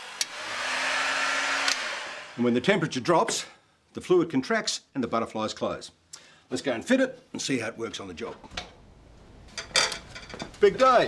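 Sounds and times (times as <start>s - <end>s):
heat gun blowing hot air: 0.0s - 2.4s.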